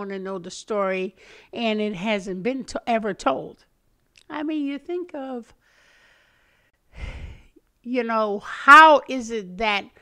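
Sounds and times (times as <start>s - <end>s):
woman breathing into microphone: 5.6s - 7.6s.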